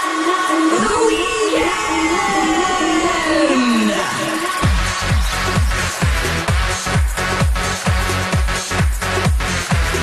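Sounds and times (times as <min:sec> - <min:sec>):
steady high tone: 0:00.7 - 0:05.7
synth tone gliding downward: 0:00.8 - 0:05.6.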